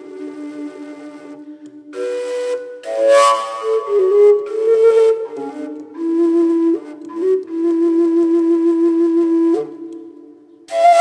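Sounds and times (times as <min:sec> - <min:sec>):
long overtone flute melody: 0:00.0 - 0:11.0.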